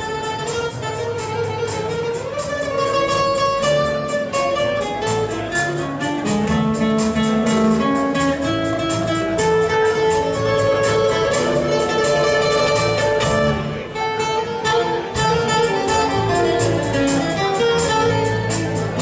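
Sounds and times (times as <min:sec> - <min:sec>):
acoustic guitar melody: 0:00.0 - 0:19.0
live band playing instrumental: 0:00.0 - 0:19.0.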